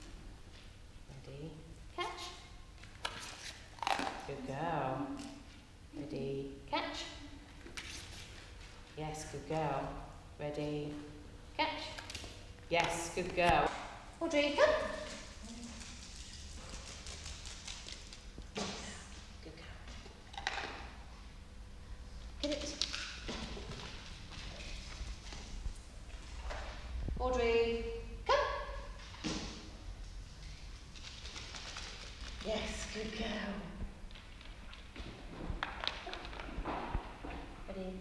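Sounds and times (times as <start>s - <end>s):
woman calling out: 27.3s - 28.8s
dog claws tapping on wooden floor: 34.1s - 37.4s.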